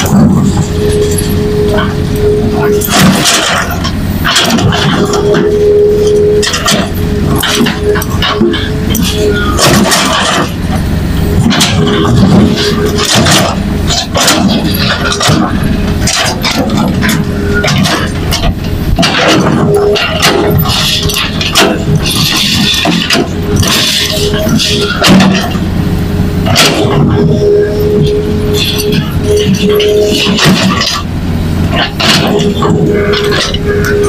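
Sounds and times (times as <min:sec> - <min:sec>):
knocks of rocks and metal: 0:00.0 - 0:02.0, 0:02.6 - 0:05.5, 0:06.1 - 0:25.7, 0:26.4 - 0:31.1, 0:31.7 - 0:34.0
excavator diesel engine: 0:00.0 - 0:34.0.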